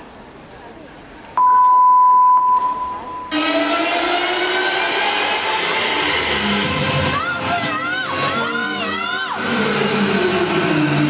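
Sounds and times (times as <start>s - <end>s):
steady electronic beep: 1.4s - 3.6s.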